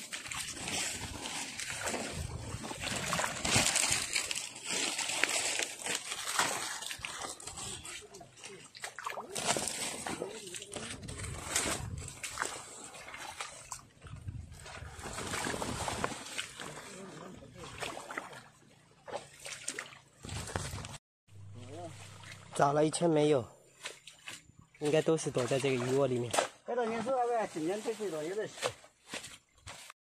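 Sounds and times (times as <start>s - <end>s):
splashing through muddy water: 0.0s - 29.9s.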